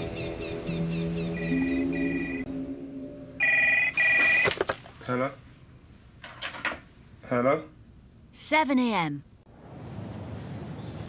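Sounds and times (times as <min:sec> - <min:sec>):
two-tone telephone ring: 0:03.4 - 0:04.6.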